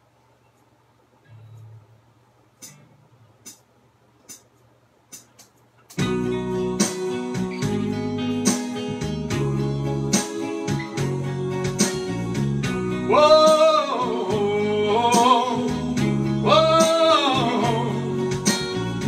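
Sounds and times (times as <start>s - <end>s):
acoustic guitar strumming chords: 6.0s - 19.0s.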